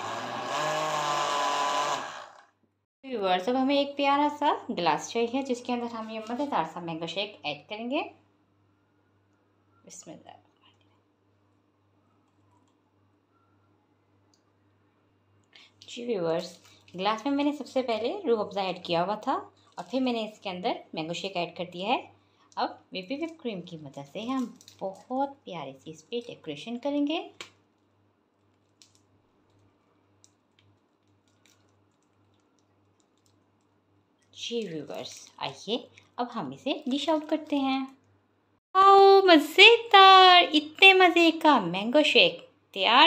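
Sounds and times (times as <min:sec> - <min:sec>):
woman speaking: 0:03.0 - 0:08.2, 0:09.9 - 0:10.4, 0:15.8 - 0:27.4, 0:34.4 - 0:38.0, 0:38.8 - 0:43.0.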